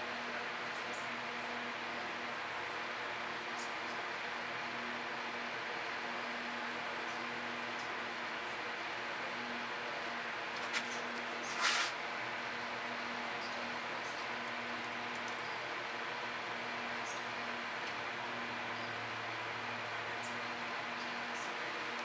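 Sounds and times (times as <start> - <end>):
brief scrape: 10.5 - 12.0.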